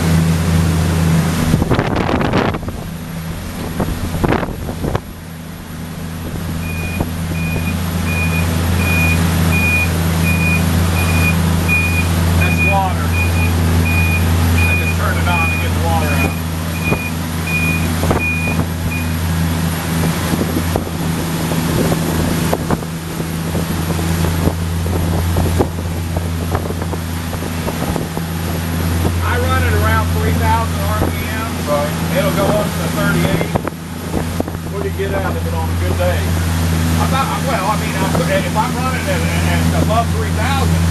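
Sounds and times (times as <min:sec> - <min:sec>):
boat engines droning: 0:00.0 - 0:40.9.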